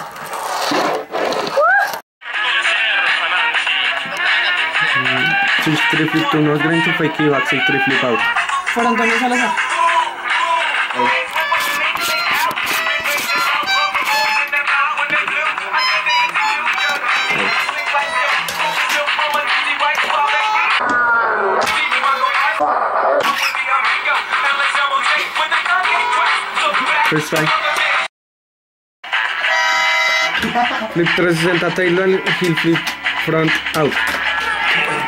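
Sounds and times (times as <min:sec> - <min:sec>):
background music with drums: 0:03.1 - 0:20.8, 0:30.4 - 0:34.9
excited voices: 0:33.7 - 0:35.0.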